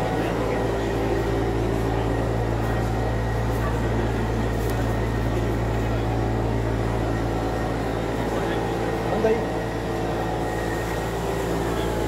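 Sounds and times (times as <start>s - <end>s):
printing machine humming: 0.0s - 12.0s.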